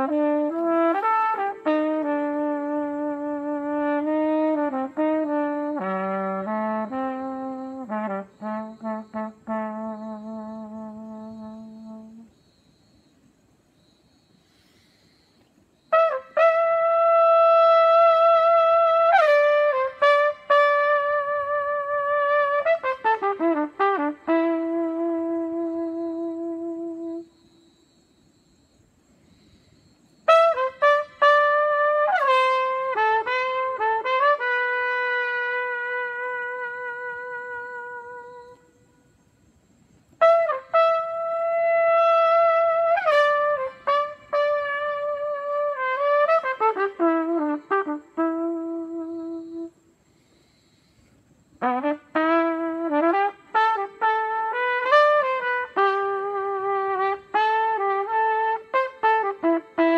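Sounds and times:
solo trumpet melody: 0:00.0 - 0:12.4, 0:15.9 - 0:27.4, 0:30.2 - 0:39.2, 0:40.1 - 0:49.8, 0:51.6 - 0:59.9.

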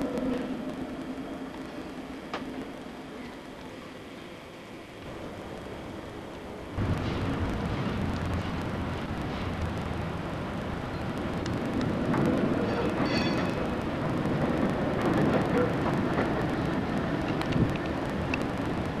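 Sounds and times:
outdoor rumble and hiss: 0:00.0 - 0:19.0
scattered clicks: 0:11.0 - 0:12.4, 0:17.2 - 0:19.0.

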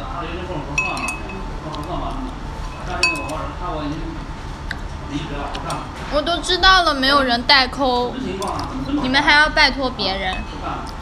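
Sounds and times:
tableware clinking: 0:00.8 - 0:01.5, 0:02.7 - 0:03.5, 0:08.3 - 0:08.8, 0:10.1 - 0:10.7.

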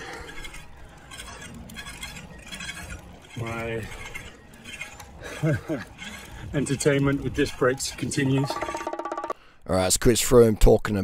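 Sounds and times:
disc brake rotor scraping: 0:00.0 - 0:09.2.

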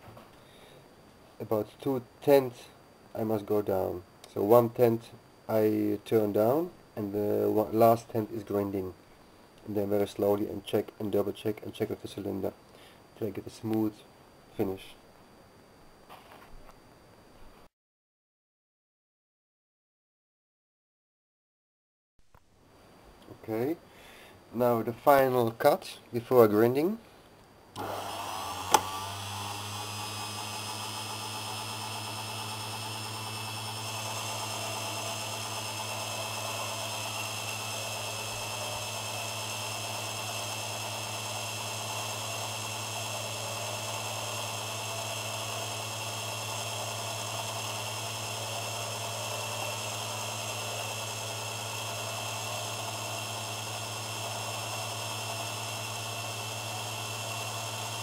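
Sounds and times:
lathe cutting metal: 0:27.8 - 0:58.0
lathe motor whining: 0:27.8 - 0:58.0.

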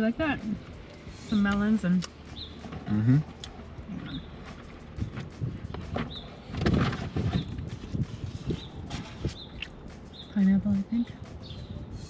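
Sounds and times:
bird chirping: 0:01.0 - 0:03.3, 0:03.9 - 0:04.7, 0:05.7 - 0:12.0.

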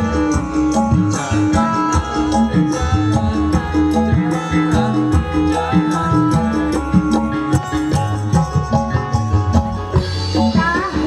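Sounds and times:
drums and tuned percussion: 0:00.0 - 0:11.0.

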